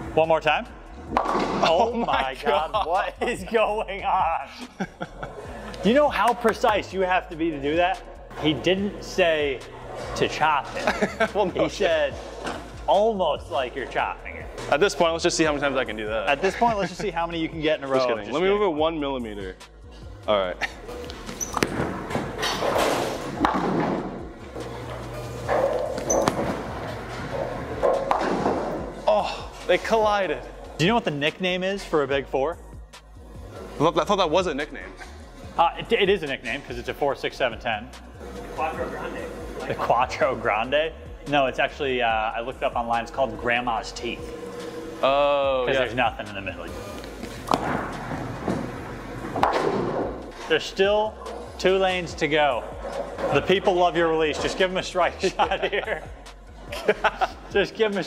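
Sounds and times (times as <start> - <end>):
bowling ball rolling: 0.7 - 2.1, 8.6 - 17.9, 20.7 - 31.4, 37.9 - 57.5.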